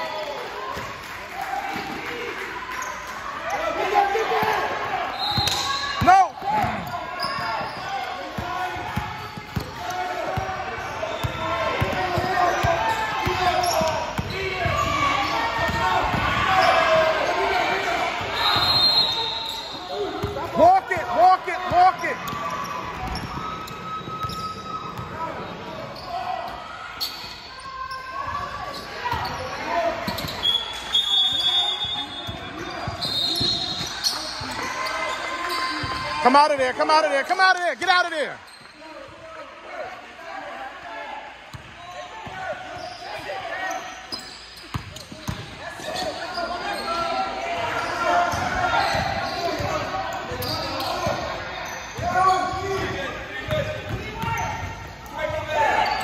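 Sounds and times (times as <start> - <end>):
sneakers squeaking: 2.7 - 39.2, 41.5 - 56.0
basketball bouncing on gym floor: 44.7 - 45.5.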